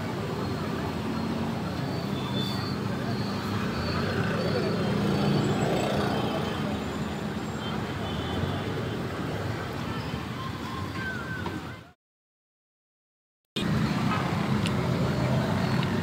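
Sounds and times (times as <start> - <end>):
faint indistinct voices: 0.0 - 8.7
street traffic noise: 0.0 - 12.0, 13.6 - 16.0.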